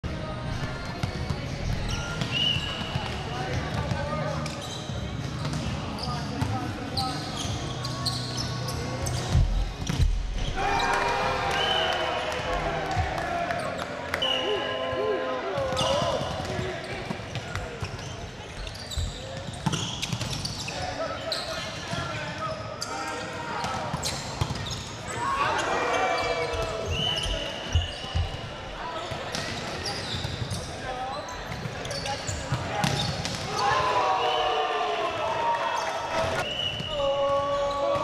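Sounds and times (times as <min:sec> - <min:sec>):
sneakers squeaking on floor: 0:00.9 - 0:10.6, 0:15.6 - 0:33.7, 0:35.8 - 0:38.0
players shouting: 0:10.4 - 0:16.6.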